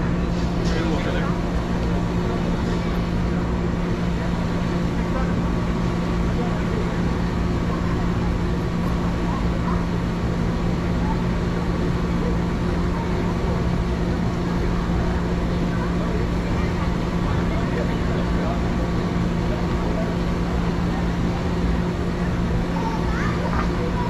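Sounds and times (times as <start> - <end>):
crowd talking indistinctly: 0.0 - 24.0
steady low hum: 0.0 - 24.0.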